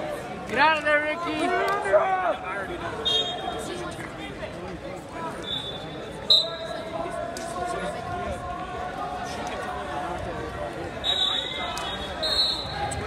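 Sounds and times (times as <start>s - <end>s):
voices echoing in a gym: 0.0s - 13.0s.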